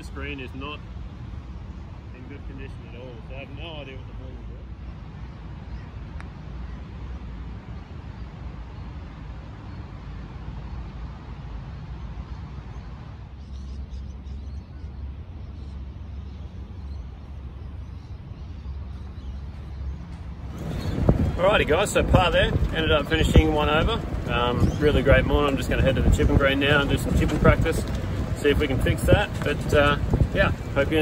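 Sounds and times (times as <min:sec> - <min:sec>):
faint open-air ambience: 0:00.0 - 0:31.0
wind rumbling on microphone: 0:00.0 - 0:31.0.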